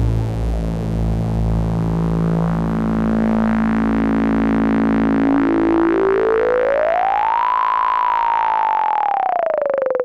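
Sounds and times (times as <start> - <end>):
gliding synthesizer tone: 2.2 - 10.0.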